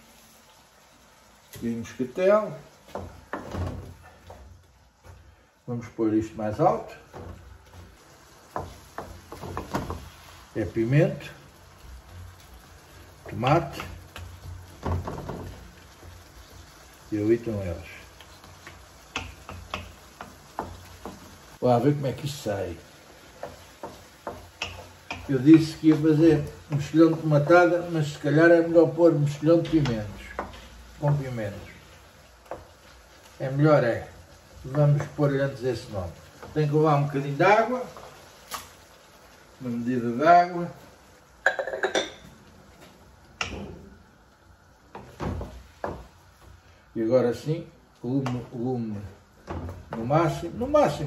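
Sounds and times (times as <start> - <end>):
wooden spoon knocking on a wok: 2.8 - 5.2, 7.1 - 10.1, 13.2 - 16.2, 18.2 - 21.6, 22.9 - 27.8, 29.6 - 31.5, 32.4 - 32.8, 41.4 - 42.3, 43.4 - 43.8, 44.9 - 46.2
kitchenware clinking: 41.4 - 42.3.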